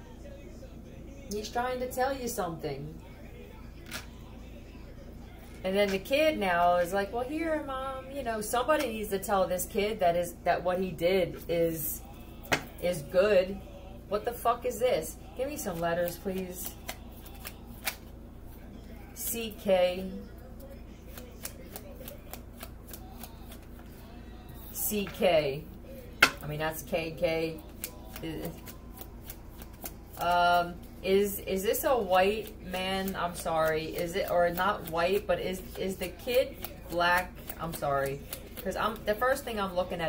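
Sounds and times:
low steady hum: 0:00.0 - 0:40.0
cards shuffled by hand: 0:15.6 - 0:18.1, 0:21.0 - 0:24.8, 0:27.6 - 0:31.0, 0:32.3 - 0:39.5.

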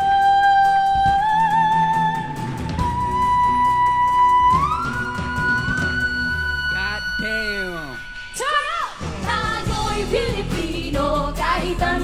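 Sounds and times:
pop backing music: 0:00.0 - 0:12.0.

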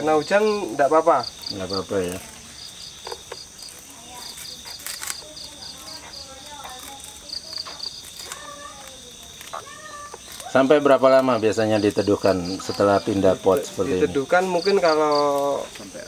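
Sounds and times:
crickets chirping: 0:00.0 - 0:16.0.

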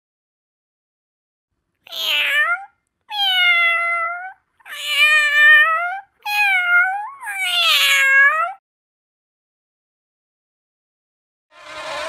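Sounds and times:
cat meowing: 0:01.8 - 0:08.6.

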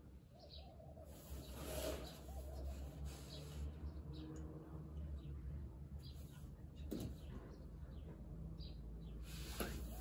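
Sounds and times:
faint birds chirping: 0:00.0 - 0:10.0.

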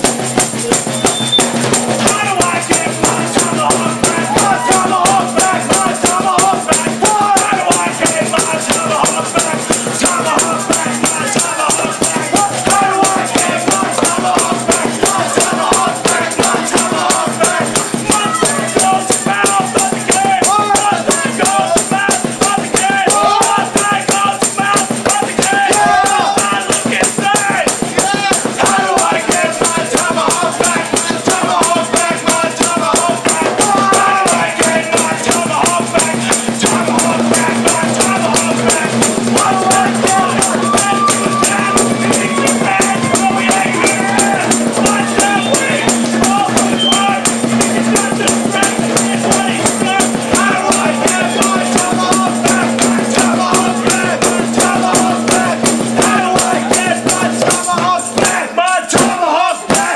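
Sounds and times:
punk rock band playing: 0:00.0 - 0:58.2
man shouting vocals: 0:02.0 - 0:59.9
acoustic guitar: 0:28.4 - 0:59.1.

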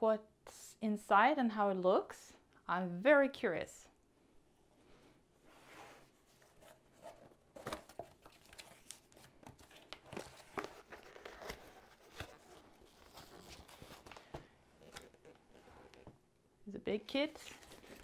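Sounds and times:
cardboard scraping and rustling: 0:05.5 - 0:16.1.

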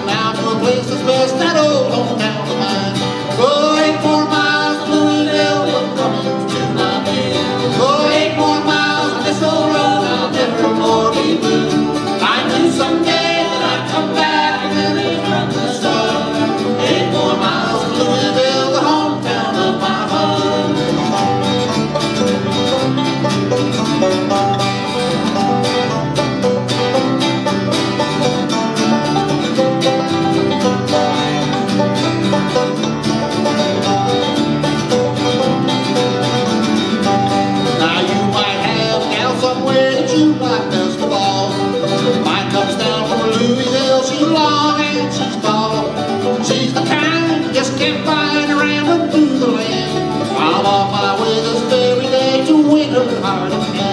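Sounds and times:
bluegrass band playing: 0:00.0 - 0:53.9.

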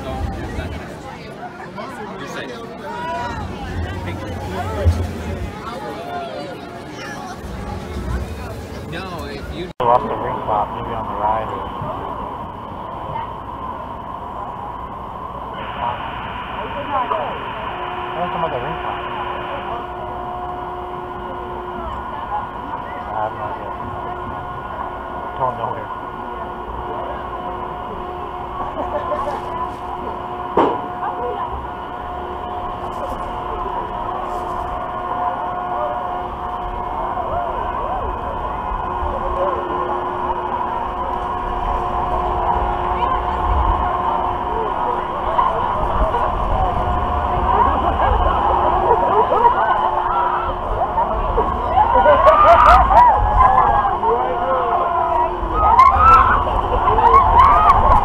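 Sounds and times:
steady hum: 0:00.0 - 0:58.0
wind rumble on microphone: 0:07.4 - 0:58.0
riders screaming and shouting: 0:31.7 - 0:58.0.

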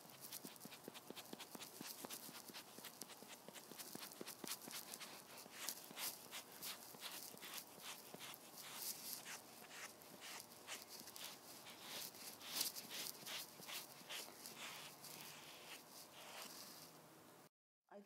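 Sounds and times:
sponge scratching on skin: 0:00.0 - 0:16.9.

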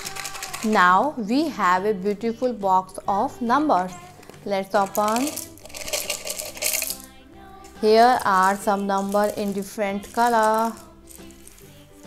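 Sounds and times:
plastic pieces clattering: 0:00.0 - 0:00.8, 0:04.2 - 0:07.1, 0:07.7 - 0:11.7.

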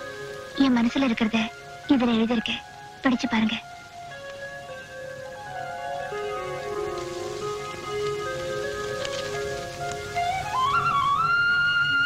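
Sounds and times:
soft music of held notes: 0:00.0 - 0:12.0
steady hiss: 0:00.0 - 0:12.0
short crackle: 0:06.6 - 0:11.0.

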